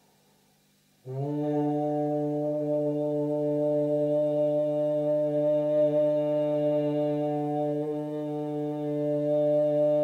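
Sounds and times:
overtone singing drone: 1.0s - 10.0s.

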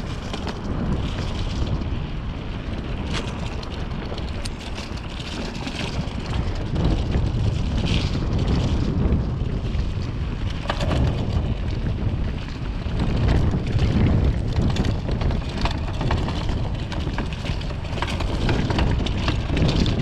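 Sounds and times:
bike clicks and rattles: 0.0s - 20.0s
tyres crackling over dry leaves: 0.0s - 20.0s
wind noise on microphone: 0.0s - 20.0s.

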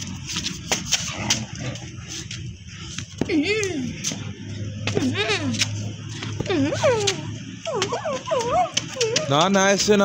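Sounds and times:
dogs playing roughly: 0.0s - 2.4s, 4.0s - 10.0s
sharp clicks and scuffles: 0.0s - 10.0s.

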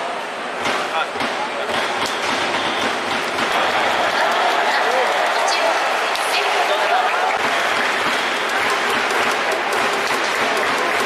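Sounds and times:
crowd voices: 0.0s - 11.0s
crowd clapping: 3.0s - 11.0s.

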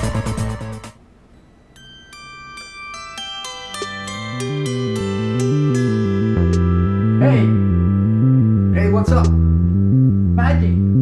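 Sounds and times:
high plucked bell-like notes: 1.7s - 9.7s.

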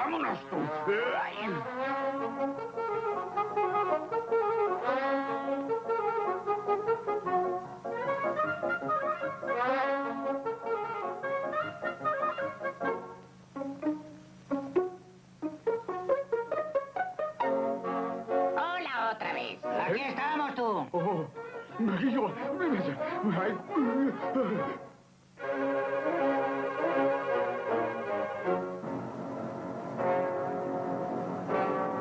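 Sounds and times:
brass-led orchestral cartoon music: 0.1s - 18.6s, 21.3s - 32.0s.

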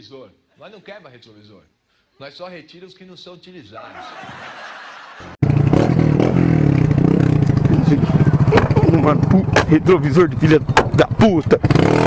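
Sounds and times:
motorcycle engine running close: 5.4s - 12.0s.

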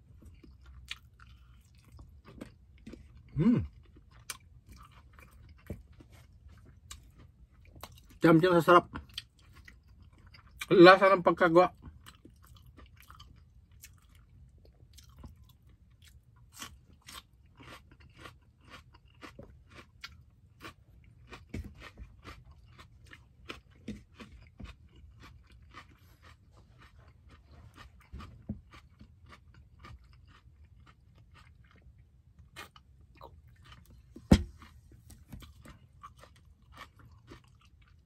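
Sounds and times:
person chewing food: 0.0s - 8.2s, 8.9s - 10.7s, 11.7s - 38.0s.

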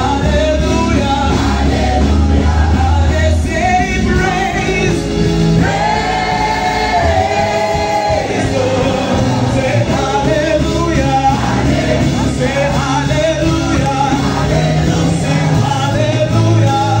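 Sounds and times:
amplified music accompaniment: 0.0s - 17.0s
group singing gospel: 0.0s - 17.0s.

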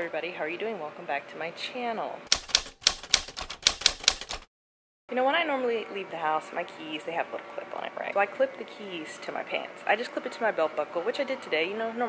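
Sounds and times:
typewriter keys clacking: 2.3s - 4.5s.

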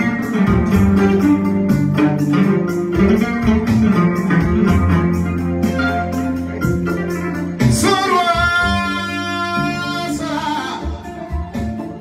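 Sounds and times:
kora plucked: 0.0s - 9.8s
high singing voice: 7.6s - 11.5s.

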